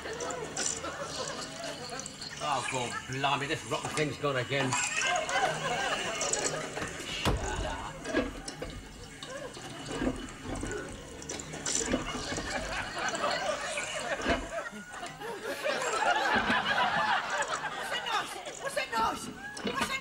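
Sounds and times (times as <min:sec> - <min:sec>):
toilet cistern running: 0:00.0 - 0:20.0.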